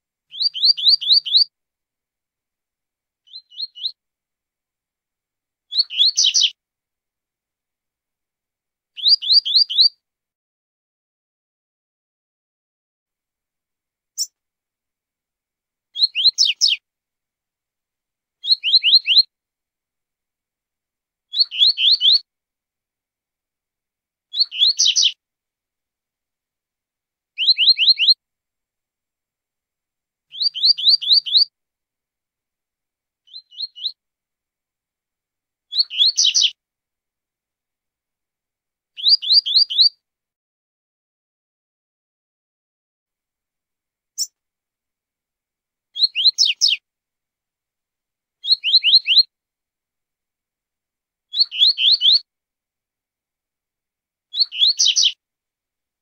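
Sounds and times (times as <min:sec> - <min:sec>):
bird whistling song: 0:00.3 - 0:01.5, 0:03.3 - 0:04.0, 0:05.7 - 0:06.6, 0:09.0 - 0:10.0, 0:16.0 - 0:16.8, 0:18.4 - 0:19.3, 0:21.3 - 0:22.2, 0:24.3 - 0:25.2, 0:27.4 - 0:28.2, 0:30.3 - 0:31.5, 0:33.3 - 0:34.0, 0:35.7 - 0:36.6, 0:39.0 - 0:40.0, 0:46.0 - 0:46.8, 0:48.4 - 0:49.3, 0:51.3 - 0:52.2, 0:54.3 - 0:55.2.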